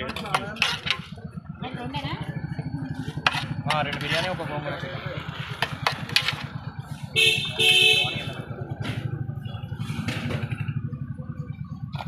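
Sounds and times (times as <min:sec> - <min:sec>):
engine running: 0:00.0 - 0:12.0
vehicle horn honking: 0:07.2 - 0:08.5.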